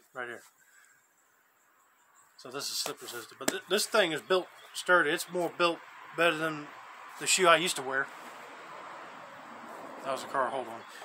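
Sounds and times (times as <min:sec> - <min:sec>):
car passing by: 0:05.8 - 0:11.0.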